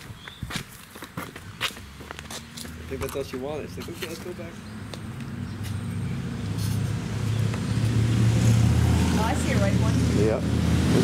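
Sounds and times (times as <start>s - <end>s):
vehicle engine humming: 1.7s - 11.0s.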